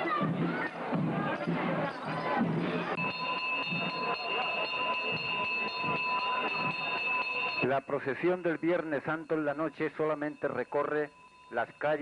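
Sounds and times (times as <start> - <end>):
crowd voices: 0.0 - 8.6
brass handbell ringing: 1.3 - 12.0.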